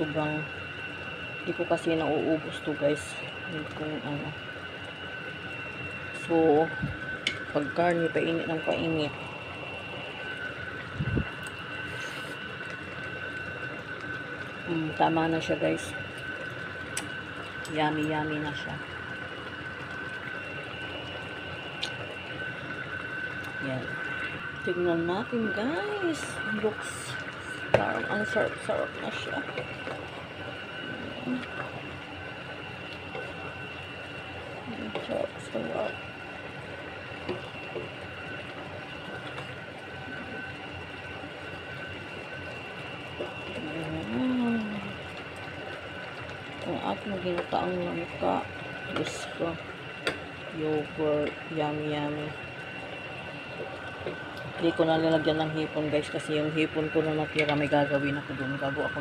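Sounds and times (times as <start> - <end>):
high whine: 0.0 - 59.0
machine hum: 0.0 - 59.0
pot bubbling and simmering: 0.0 - 59.0.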